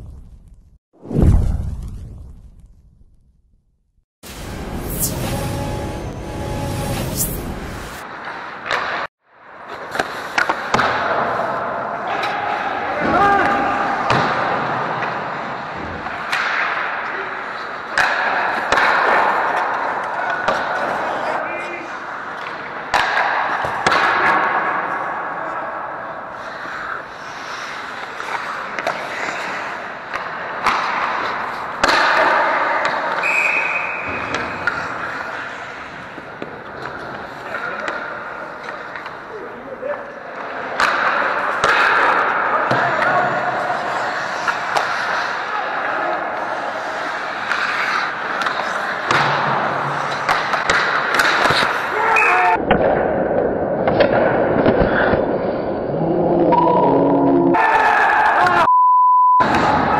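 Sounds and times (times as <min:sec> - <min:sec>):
skates scraping ice: 0:04.4 - 0:52.6, 0:53.4 - 0:56.0
short high whistle: 0:04.8 - 0:08.0, 0:33.2 - 0:34.1.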